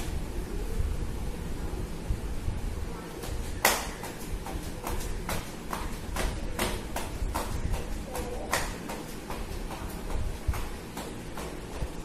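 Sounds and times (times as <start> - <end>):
flip-flops slapping on hard floor: 3.2 - 12.0.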